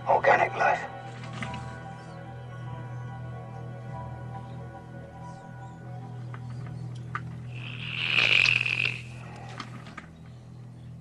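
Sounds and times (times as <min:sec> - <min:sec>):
low drone: 0:00.0 - 0:11.0
loud rasping hiss: 0:07.5 - 0:09.2.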